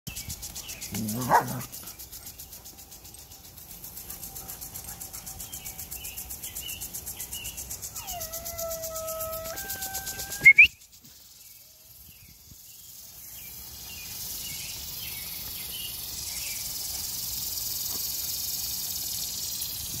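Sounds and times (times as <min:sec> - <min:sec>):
water spray hissing: 0:09.1 - 0:20.0.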